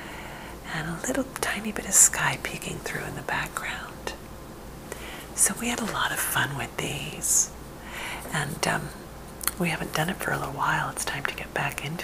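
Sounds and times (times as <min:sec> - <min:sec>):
woman whispering softly: 0:00.7 - 0:04.2, 0:05.3 - 0:07.5, 0:08.2 - 0:12.0.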